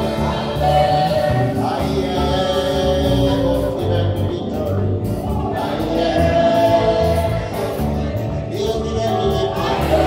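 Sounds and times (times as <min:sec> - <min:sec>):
electric bass: 0:00.0 - 0:10.0
keyboard: 0:00.0 - 0:10.0.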